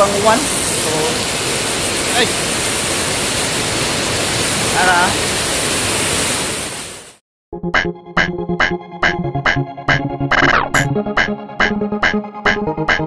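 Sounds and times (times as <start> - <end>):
heavy rain pouring: 0.0 - 7.2.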